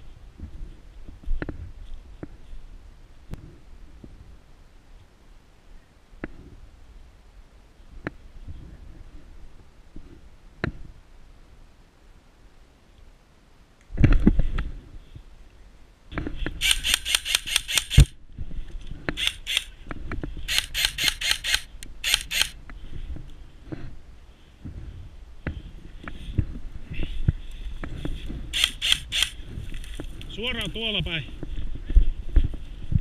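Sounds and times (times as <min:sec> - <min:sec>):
airsoft rifle firing bursts: 0:16.6 - 0:18.2, 0:20.5 - 0:22.6, 0:28.6 - 0:29.4.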